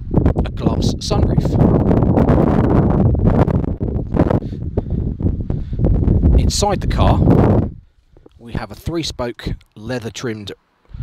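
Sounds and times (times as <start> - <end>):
wind buffeting microphone: 0.0 - 9.7.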